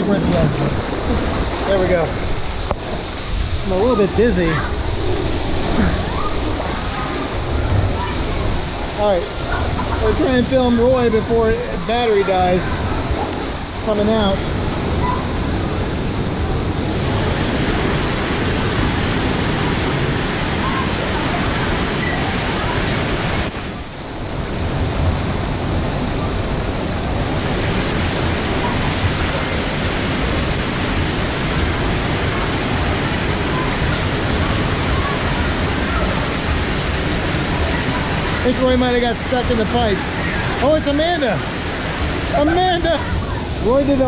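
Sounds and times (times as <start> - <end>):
water rushing and splashing: 0.0 - 44.0.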